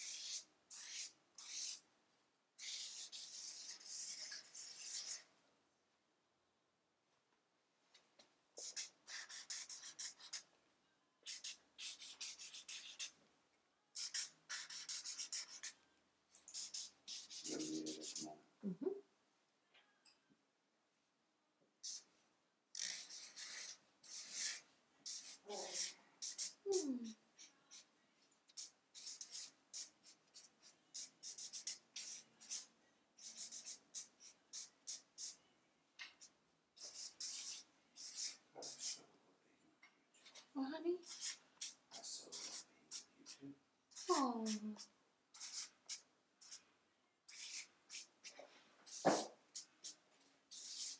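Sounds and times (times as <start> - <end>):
marker squeaking on paper: 0.0 - 1.8, 2.6 - 5.2, 8.6 - 10.4, 11.2 - 13.1, 14.0 - 15.8, 16.5 - 18.3, 21.8 - 22.1, 22.7 - 27.9, 28.5 - 35.4, 36.2 - 39.0, 41.0 - 43.1, 43.9 - 46.6, 47.3 - 50.9.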